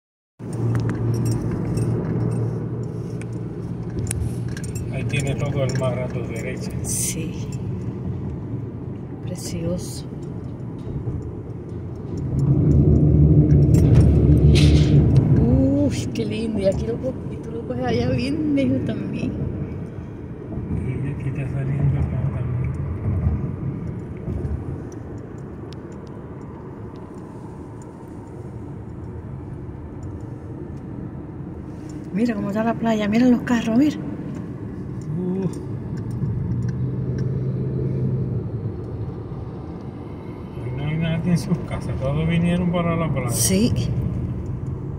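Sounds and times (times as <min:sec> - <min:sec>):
car tyres rumbling on road: 0:00.4 - 0:44.9.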